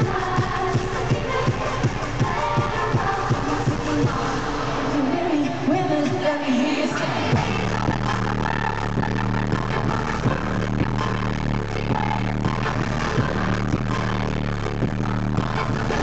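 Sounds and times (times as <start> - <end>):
deep bass line with steady beat: 0.0 - 6.2, 7.2 - 16.0
pop concert music over sound system: 0.0 - 16.0.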